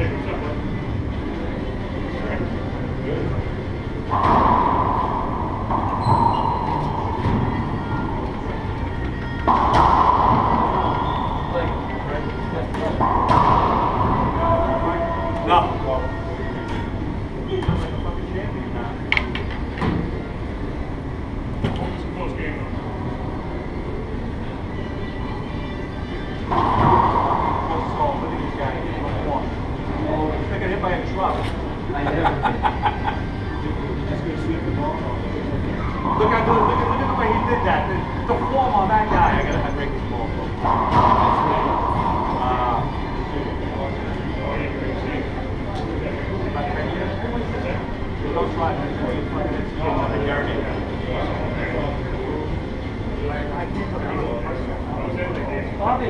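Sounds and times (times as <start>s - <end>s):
players' voices: 0.0s - 56.0s
steady low hum: 0.0s - 56.0s
racquet strikes: 4.0s - 15.8s, 26.4s - 29.5s, 40.5s - 44.1s.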